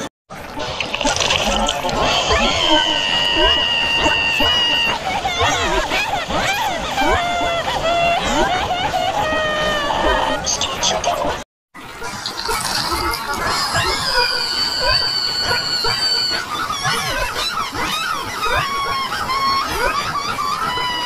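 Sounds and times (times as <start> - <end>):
squealing cartoon voices: 0.6 - 11.4, 12.0 - 21.0
high whistle-like tone: 14.3 - 16.4.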